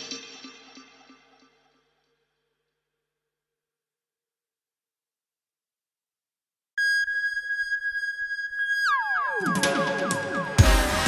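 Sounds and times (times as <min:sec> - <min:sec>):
falling synthesizer tones: 0:06.8 - 0:11.0
high synthesizer tone: 0:06.8 - 0:11.0.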